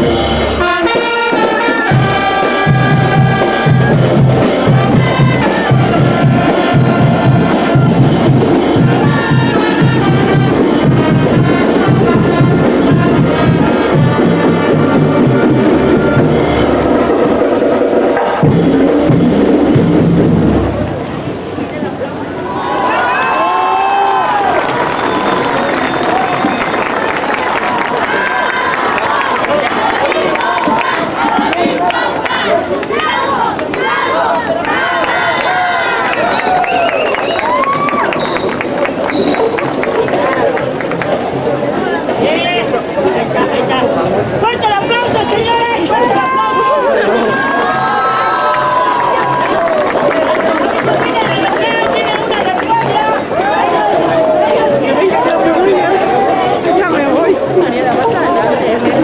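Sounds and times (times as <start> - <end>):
marching band playing: 0.0 - 22.2, 24.2 - 59.0
crowd voices and cheering: 0.0 - 59.0.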